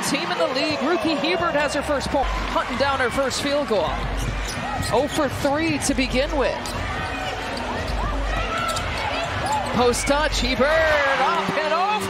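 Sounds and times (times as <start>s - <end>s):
crowd murmur: 0.0s - 12.0s
basketball dribbling: 1.2s - 11.0s
shoes squeaking on hardwood floor: 3.7s - 10.6s.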